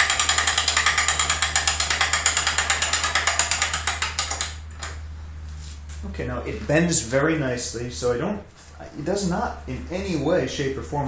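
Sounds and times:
winch ratchet clicking: 0:00.0 - 0:05.0.

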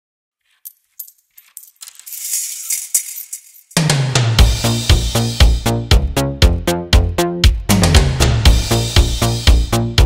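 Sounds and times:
coins clinking: 0:00.5 - 0:03.9.

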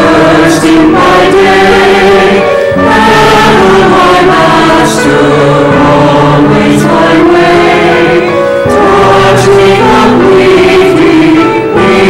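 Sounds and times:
church choir singing: 0:00.0 - 0:12.0.

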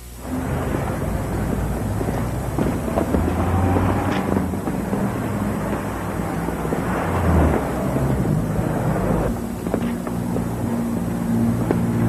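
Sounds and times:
city traffic rumble: 0:00.0 - 0:12.0.

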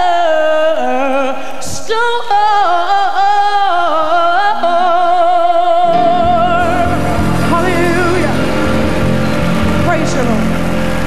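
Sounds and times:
person singing: 0:00.0 - 0:11.0
gospel band sustained chords: 0:05.5 - 0:11.0.

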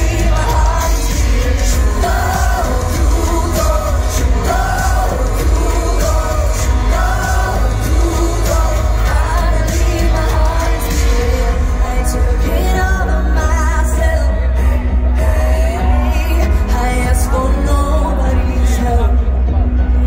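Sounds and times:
heavy bass: 0:00.0 - 0:20.0
live pop song over sound system: 0:00.0 - 0:20.0.

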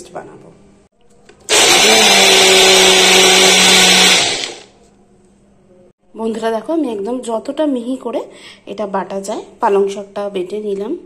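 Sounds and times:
blender whirring: 0:01.5 - 0:04.7.

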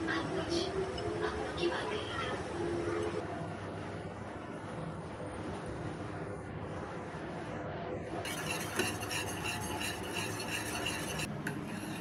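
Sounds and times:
whisk scraping and clinking pan: 0:08.3 - 0:12.0.

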